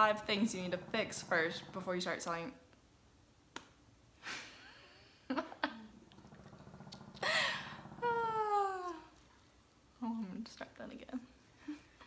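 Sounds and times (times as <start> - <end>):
quiet muttering: 0.0 - 2.5
woman laughing: 4.3 - 5.9.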